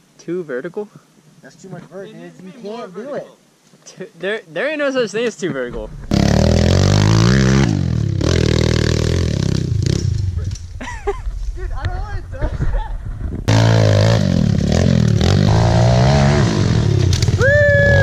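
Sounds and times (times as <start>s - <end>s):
voices: 0.2s - 6.0s
pit bike engines revving: 6.0s - 10.6s, 13.5s - 18.0s.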